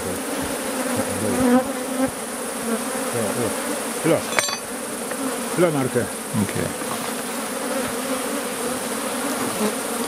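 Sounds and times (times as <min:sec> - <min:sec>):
honeybees buzzing: 0:00.0 - 0:10.0.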